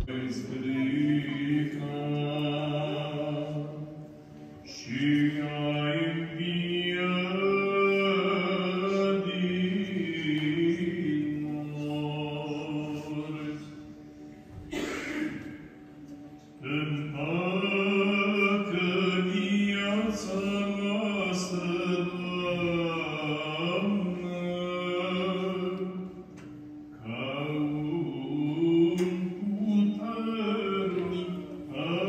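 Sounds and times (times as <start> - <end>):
liturgical chanting: 0.0 - 32.0.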